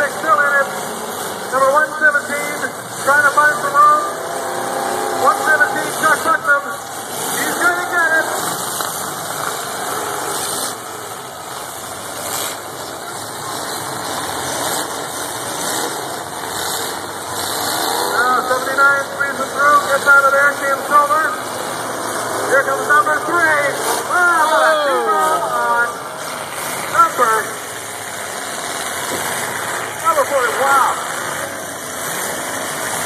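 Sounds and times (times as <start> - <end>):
many car engines running: 0.0 - 33.0.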